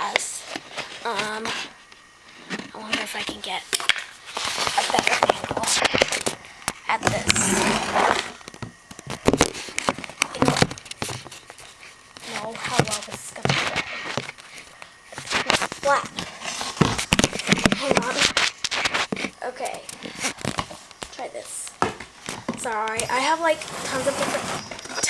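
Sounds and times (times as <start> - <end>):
plastic and cardboard crinkling: 0.0 - 25.0.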